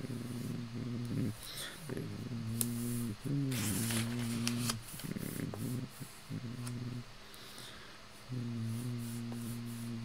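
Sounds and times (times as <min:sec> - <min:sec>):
man chanting prayer: 0:00.0 - 0:07.1, 0:08.3 - 0:10.0.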